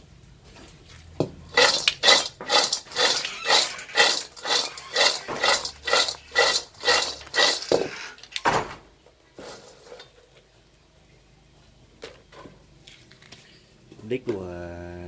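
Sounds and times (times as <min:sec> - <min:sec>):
pieces rattling in a metal wok: 0:01.5 - 0:08.1, 0:09.4 - 0:10.2.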